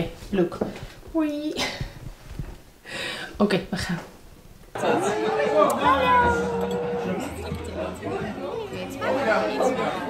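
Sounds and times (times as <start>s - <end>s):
several voices talking at once: 4.8s - 10.0s.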